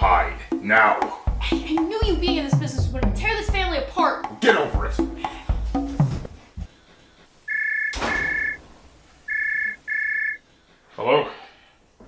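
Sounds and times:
soft knocks: 0:05.5 - 0:06.7
two-tone phone ringing: 0:07.5 - 0:08.6, 0:09.3 - 0:10.4.

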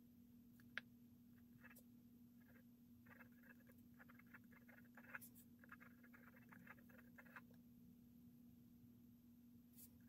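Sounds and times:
low steady hum: 0:00.0 - 0:10.0
pen scratching on paper: 0:01.6 - 0:01.8, 0:02.4 - 0:07.6.

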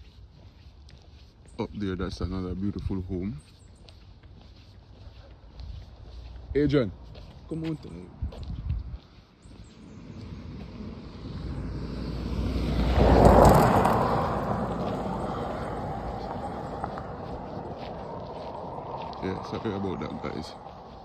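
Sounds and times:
vehicle passing on road: 0:00.0 - 0:21.0.

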